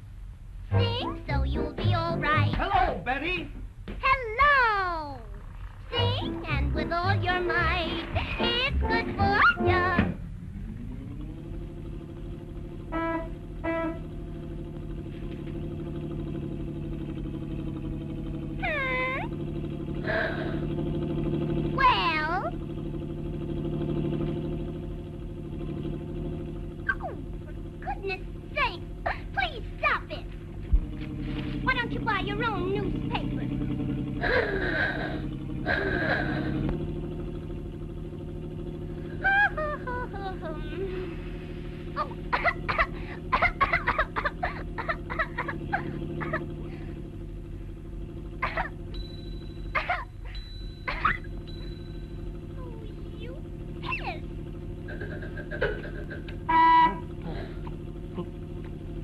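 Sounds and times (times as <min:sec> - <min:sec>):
steady low hum: 0:00.0 - 0:59.0
held high tone: 0:00.7 - 0:02.6, 0:49.0 - 0:53.2, 0:56.4 - 0:57.2
cartoon vocal squeaks and grunts: 0:18.6 - 0:19.3, 0:53.8 - 0:54.2.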